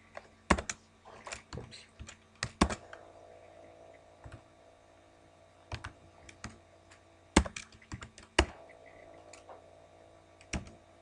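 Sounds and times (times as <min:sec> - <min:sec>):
computer keyboard keystrokes: 0:05.7 - 0:06.6, 0:07.4 - 0:08.5, 0:10.4 - 0:10.8.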